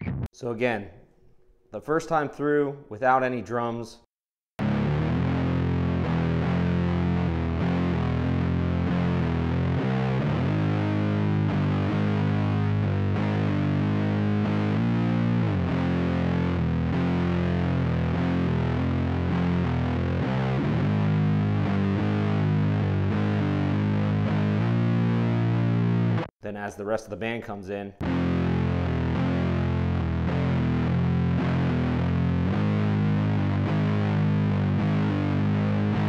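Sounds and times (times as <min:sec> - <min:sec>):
distorted electric guitar riff: 0:00.0 - 0:00.3, 0:04.6 - 0:26.3, 0:28.0 - 0:36.0.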